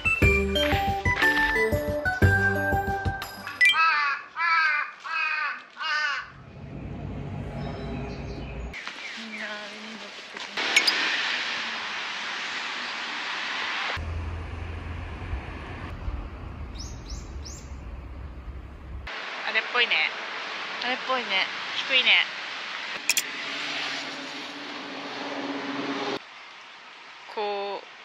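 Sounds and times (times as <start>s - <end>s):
crow cawing: 3.8s - 6.5s
outdoor rumble and hiss: 8.4s - 28.0s.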